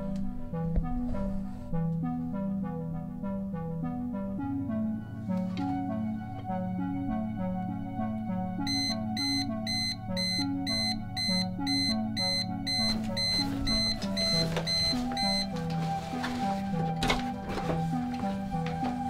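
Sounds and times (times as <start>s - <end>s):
background music: 0.0s - 19.0s
alarm clock beeping: 8.6s - 15.8s.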